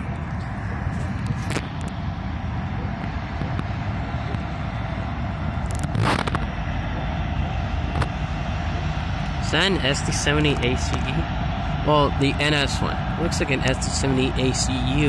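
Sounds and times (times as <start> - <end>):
diesel locomotives rumbling: 0.0 - 15.0
sharp cracks: 5.6 - 6.6.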